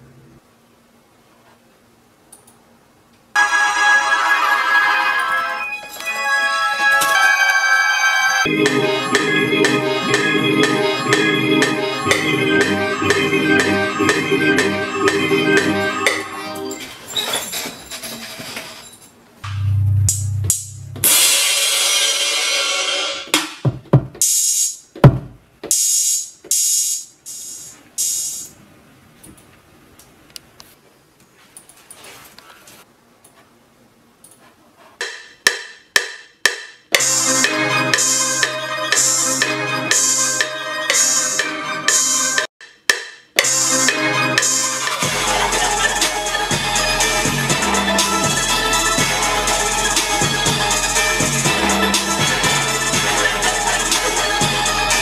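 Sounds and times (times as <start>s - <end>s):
drum and cymbal samples: 8.5s - 16.2s, 19.4s - 24.9s, 25.7s - 28.5s, 35.0s - 55.0s
keyboard melody loop: 8.5s - 16.7s, 19.5s - 21.2s, 43.5s - 55.0s
bass line: 19.4s - 21.4s, 45.0s - 55.0s.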